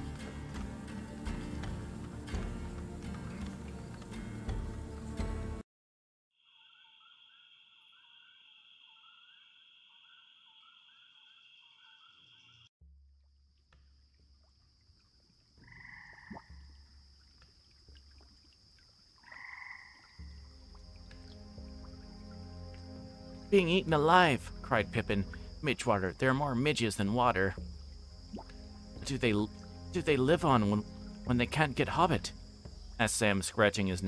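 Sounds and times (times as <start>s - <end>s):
high insect trill: 13.8s - 34.0s
frogs calling in chorus: 15.6s - 16.6s, 19.2s - 34.0s
low musical drone: 20.3s - 33.1s.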